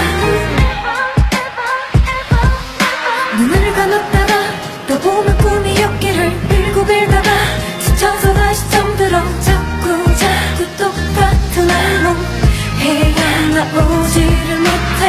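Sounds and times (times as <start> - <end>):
bass line: 0.0 - 0.9, 5.3 - 15.0
person singing: 0.0 - 15.0
drum beat: 0.6 - 5.8, 6.5 - 8.7.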